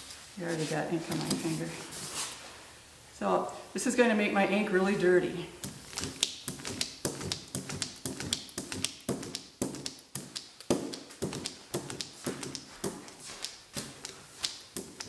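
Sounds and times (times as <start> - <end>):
brayer rolling over tacky ink: 5.6 - 15.0.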